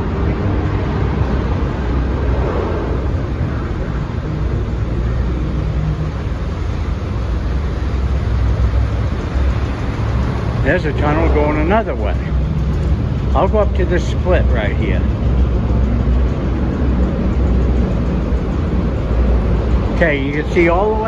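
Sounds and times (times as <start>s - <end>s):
traffic echoing in tunnel: 0.0s - 21.0s.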